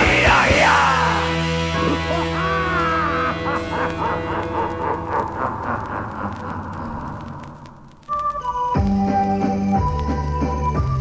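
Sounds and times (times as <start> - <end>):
punk rock band music: 0.0 - 4.6.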